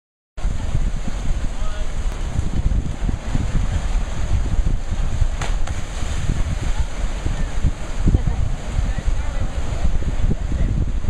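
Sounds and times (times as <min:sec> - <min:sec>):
ocean surf on rocks: 0:00.4 - 0:11.0
wind buffeting microphone: 0:00.4 - 0:11.0.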